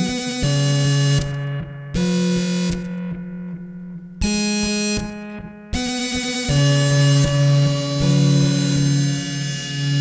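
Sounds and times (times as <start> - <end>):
held synthesizer chords: 0.0 - 10.0.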